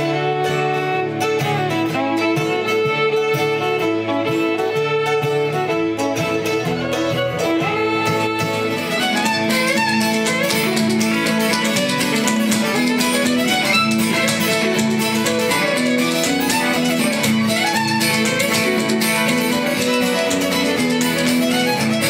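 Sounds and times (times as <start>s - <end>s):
fiddle playing lively tune: 0.0s - 22.0s
strummed guitar: 0.0s - 22.0s
step-dancing shoes tapping on stage: 8.4s - 22.0s.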